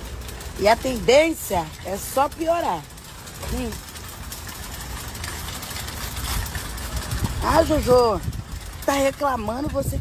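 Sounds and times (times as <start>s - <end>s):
low rumble and hiss outdoors: 0.0s - 10.0s.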